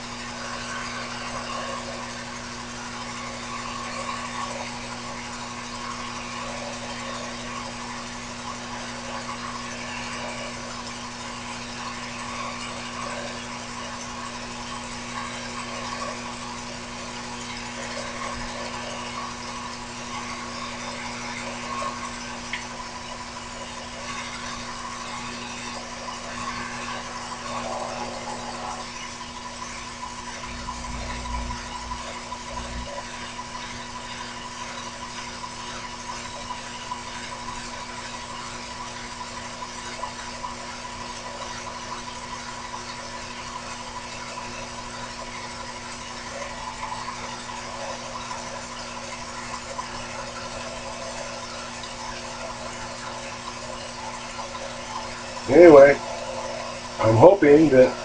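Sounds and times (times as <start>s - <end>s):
lathe motor and gear hum: 0.0s - 34.5s.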